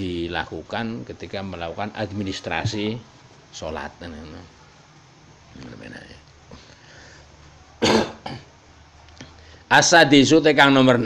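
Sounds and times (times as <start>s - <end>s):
man coughing: 7.8s - 8.5s.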